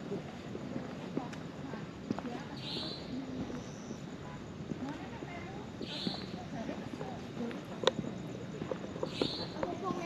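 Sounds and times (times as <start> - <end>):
faint voices: 0.0 - 10.0
footsteps on brick path: 0.0 - 10.0.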